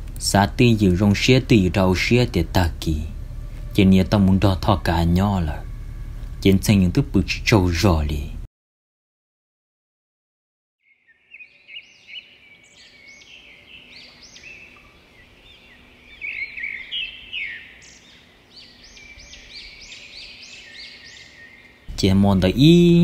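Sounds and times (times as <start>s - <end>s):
songbirds chirping: 0.0s - 8.3s, 10.8s - 23.0s
faint steady hum: 0.0s - 8.5s.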